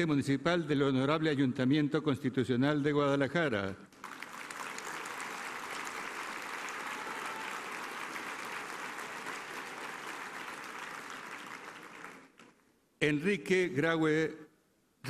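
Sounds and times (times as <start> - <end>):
audience applauding: 4.0 - 12.6.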